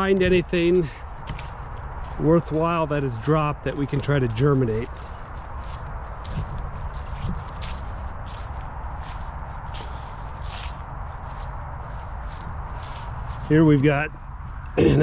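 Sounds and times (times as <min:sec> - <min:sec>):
footsteps on dry leaves: 0:00.0 - 0:14.6
outdoor background: 0:00.0 - 0:15.0.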